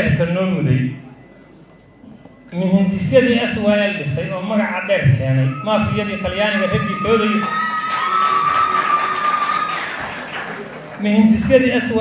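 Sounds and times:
steady high-pitched tone: 0.0s - 7.8s
audience noise: 5.8s - 12.0s.

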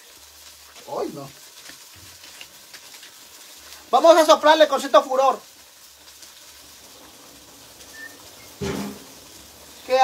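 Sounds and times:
stove fire crackling: 0.0s - 10.0s.

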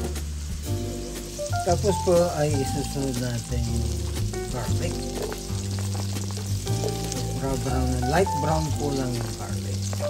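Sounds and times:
background music: 0.0s - 10.0s
garlic sizzling in oil: 0.0s - 10.0s
scraping in a wok: 5.0s - 7.4s.

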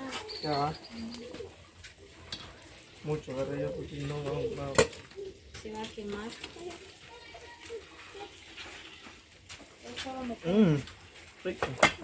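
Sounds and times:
dove cooing: 0.0s - 2.2s, 3.1s - 5.6s.

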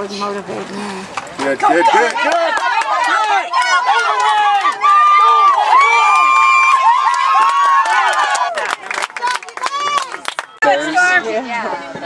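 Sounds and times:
spectators cheering and yelling: 1.6s - 10.9s
long drawn-out shout: 1.8s - 10.2s.

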